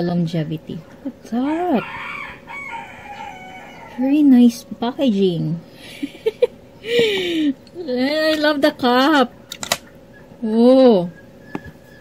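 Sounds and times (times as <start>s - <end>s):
rooster crowing: 1.4s - 4.3s.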